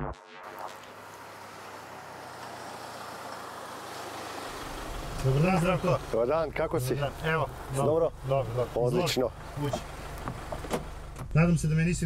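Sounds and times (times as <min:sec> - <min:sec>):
tyres and engine hissing: 0:00.8 - 0:12.0.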